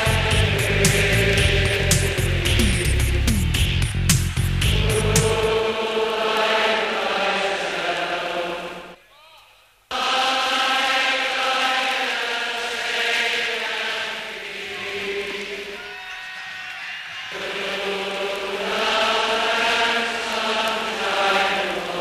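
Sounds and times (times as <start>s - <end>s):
football crowd chanting: 0.0s - 3.3s, 4.7s - 9.0s, 9.9s - 22.0s.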